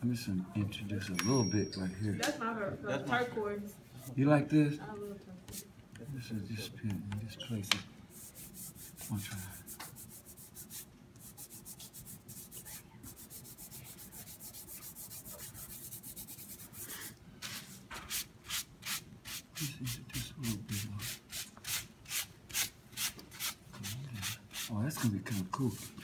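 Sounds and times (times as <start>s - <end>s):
pastel rubbing on paper: 8.1s - 26.0s.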